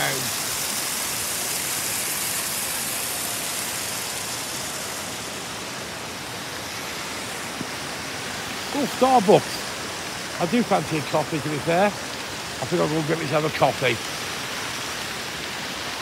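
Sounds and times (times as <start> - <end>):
steady rushing hiss: 0.0 - 16.0.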